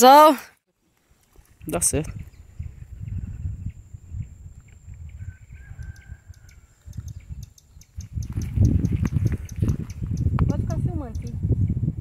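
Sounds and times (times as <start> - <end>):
wind rumble on microphone: 1.4 - 12.0
light high ticking: 5.8 - 11.4.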